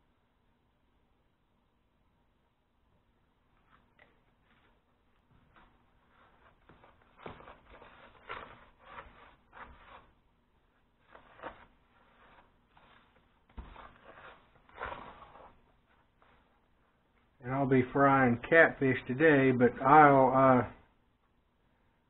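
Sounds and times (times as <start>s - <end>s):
hand stirring dry powder mix: 3.6s - 17.7s.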